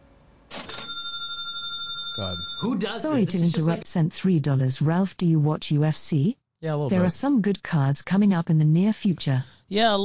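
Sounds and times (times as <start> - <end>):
donation alert chime: 0.6 - 3.8.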